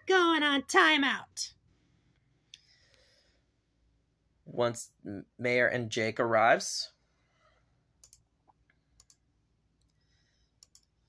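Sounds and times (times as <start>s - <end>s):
faint clicks: 8.0s - 9.2s, 10.6s - 10.9s.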